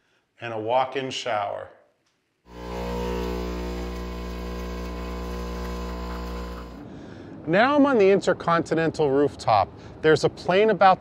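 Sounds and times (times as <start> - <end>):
coffee machine pump buzzing: 2.5 - 6.9.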